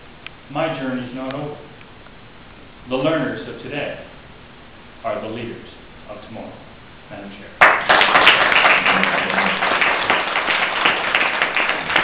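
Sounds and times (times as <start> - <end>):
audience applauding: 7.6 - 12.0
hands clapping close to microphone: 7.6 - 12.0.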